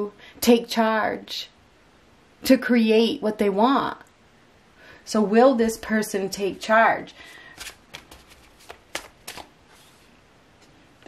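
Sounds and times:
cards being shuffled: 0:07.3 - 0:10.1.

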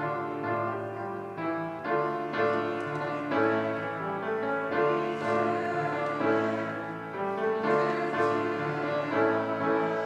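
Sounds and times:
piano accompaniment: 0:00.0 - 0:10.0
congregation singing a hymn: 0:02.0 - 0:10.0.

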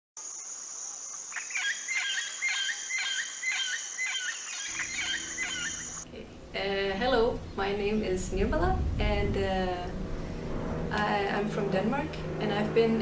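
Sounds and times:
high drone of insects: 0:00.2 - 0:13.0
bird calling: 0:01.2 - 0:06.1.

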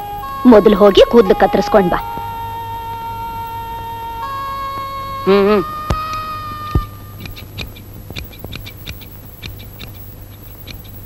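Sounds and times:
held music note: 0:00.0 - 0:07.1
scissors snipping hair: 0:07.2 - 0:10.0.

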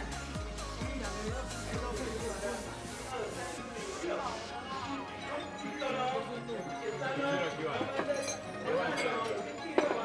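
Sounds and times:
spoons clinking on porcelain bowls: 0:07.8 - 0:10.0.

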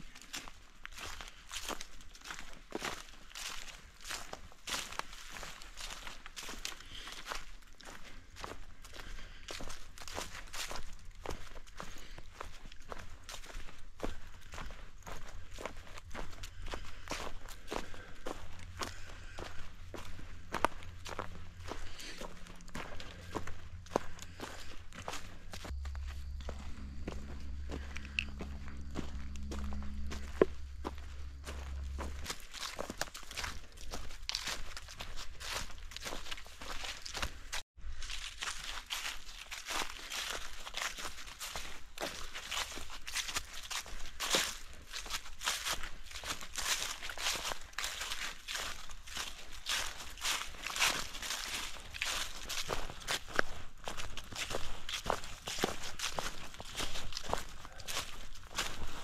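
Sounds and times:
footsteps on fallen leaves: 0:00.0 - 0:59.0
low steady hum: 0:18.4 - 0:32.5.

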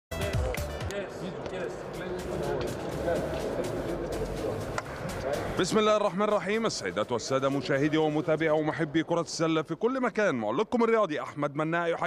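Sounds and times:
music: 0:00.1 - 0:08.8.

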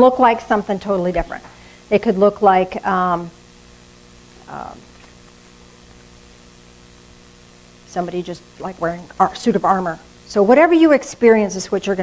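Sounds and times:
faint hiss: 0:00.0 - 0:12.0
low electrical hum: 0:00.0 - 0:12.0.

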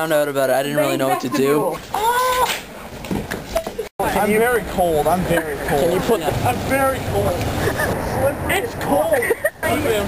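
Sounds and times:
boy's high-pitched vocal exclamation: 0:01.4 - 0:02.5.

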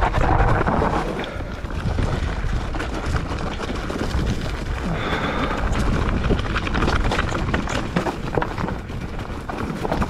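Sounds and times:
bike tyres crunching over stones: 0:00.0 - 0:10.0
wind on microphone: 0:00.0 - 0:10.0.

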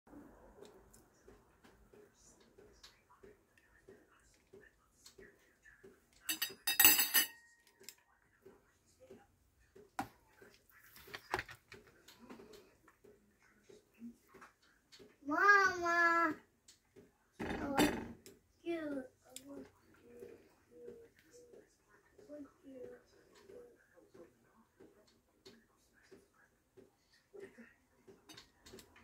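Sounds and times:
utensils clinking on plates: 0:06.2 - 0:07.8
clattering with metallic clink: 0:06.3 - 0:07.5.

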